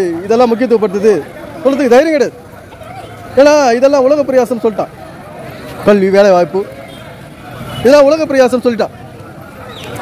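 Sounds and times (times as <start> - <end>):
busy street traffic: 0.0 - 10.0.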